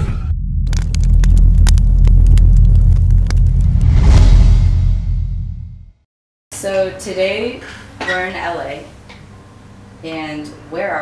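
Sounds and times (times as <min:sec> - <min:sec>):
deep rumble: 0:00.0 - 0:06.0
crackling and clicking: 0:00.6 - 0:04.3
short whoosh: 0:03.4 - 0:06.0.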